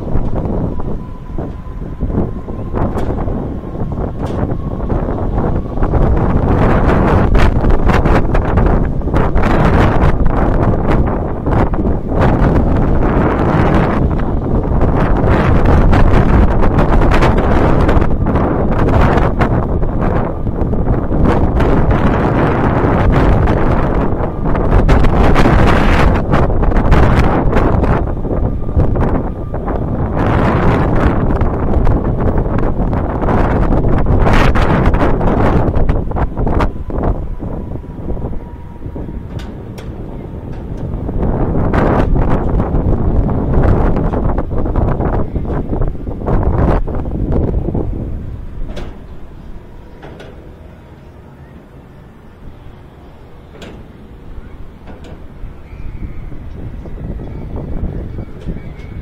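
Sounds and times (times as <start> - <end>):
wind rushing over microphone: 0.0 - 59.0.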